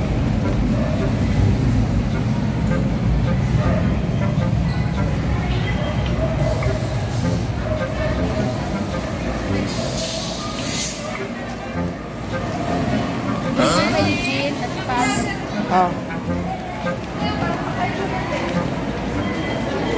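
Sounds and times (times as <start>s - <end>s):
faint voices: 0.0s - 19.9s
road traffic rumble: 0.0s - 19.9s.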